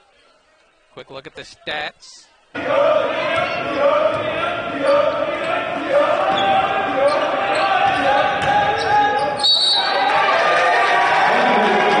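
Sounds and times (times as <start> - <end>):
players and crowd voices: 0.0 - 12.0
basketball bouncing: 3.2 - 4.4, 7.8 - 8.9.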